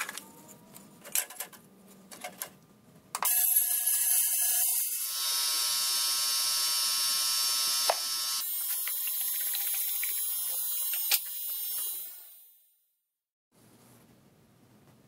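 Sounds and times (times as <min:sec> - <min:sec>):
ultrasonic cleaner buzz: 0:05.0 - 0:12.2.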